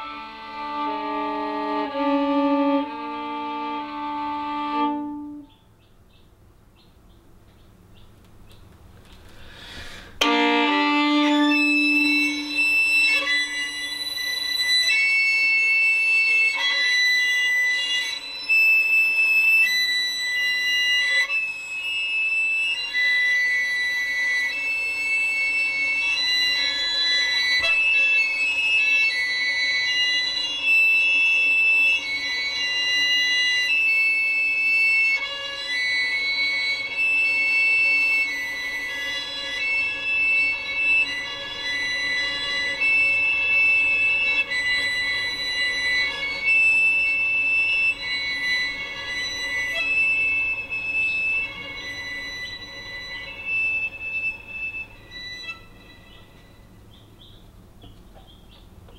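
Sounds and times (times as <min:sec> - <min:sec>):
violin long bowed notes: 0:00.0 - 0:05.7, 0:09.2 - 0:58.0.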